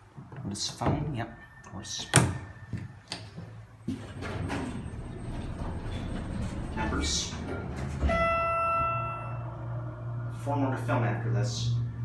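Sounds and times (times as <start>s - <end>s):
sliding doors closing with a thud: 3.8s - 9.2s
elevator low hum: 3.8s - 12.0s.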